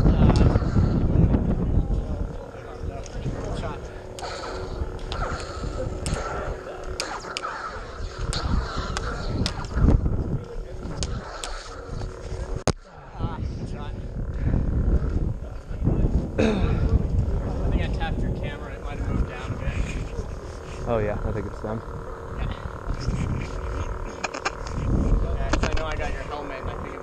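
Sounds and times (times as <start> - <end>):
electronic saber hum: 0.0 - 27.0
microphone rumble: 0.0 - 27.0
saber blades clashing: 3.8 - 12.6
saber swing sounds: 4.1 - 12.7.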